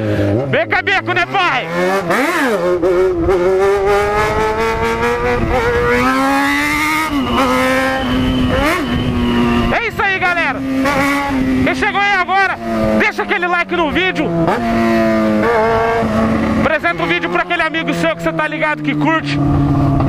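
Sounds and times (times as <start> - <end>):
motorcycle engine accelerating: 0.0 - 20.0.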